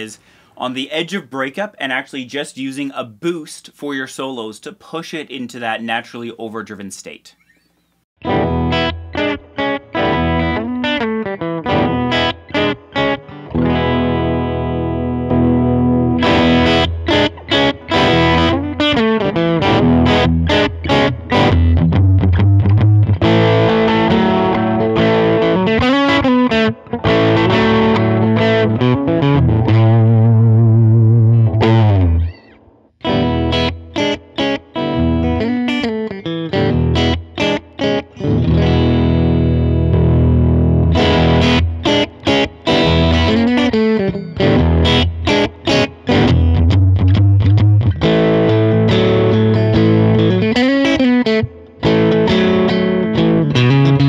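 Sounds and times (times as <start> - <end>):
overdriven electric guitar: 8.2 - 54.0.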